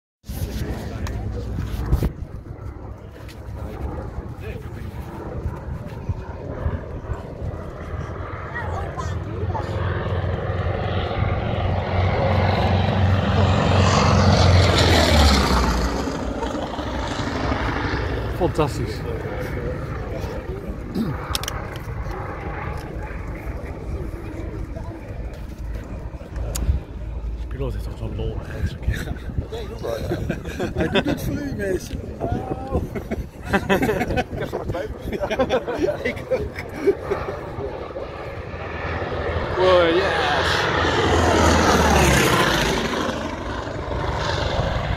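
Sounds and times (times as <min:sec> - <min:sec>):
distant propeller plane engine droning: 0:00.3 - 0:44.9
people talking: 0:08.4 - 0:10.2, 0:18.3 - 0:21.4, 0:22.1 - 0:38.2, 0:39.4 - 0:43.1.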